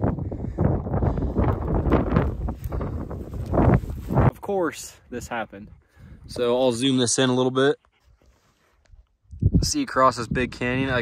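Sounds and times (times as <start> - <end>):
wind buffeting microphone: 0.0 - 6.8, 9.2 - 11.0
footsteps through brush: 1.6 - 4.4.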